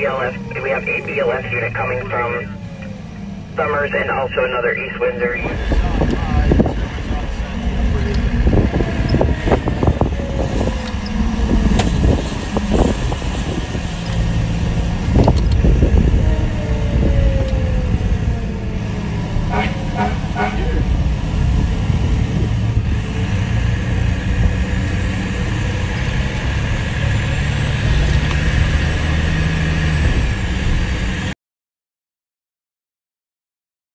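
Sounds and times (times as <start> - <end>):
indistinct voices: 0.0 - 11.9, 18.6 - 22.4
diesel engine running: 0.0 - 31.3.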